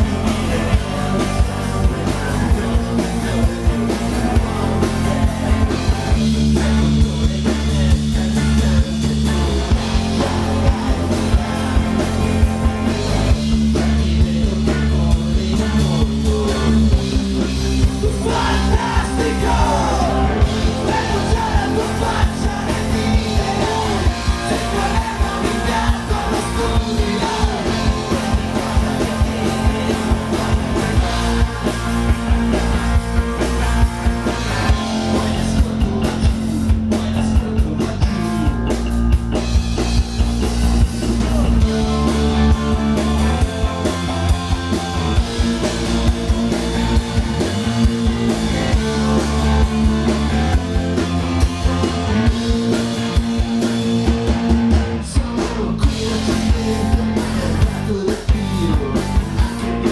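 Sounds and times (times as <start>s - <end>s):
distorted electric guitars: 0.0s - 59.9s
drum kit: 0.0s - 59.9s
electric bass: 0.0s - 59.9s.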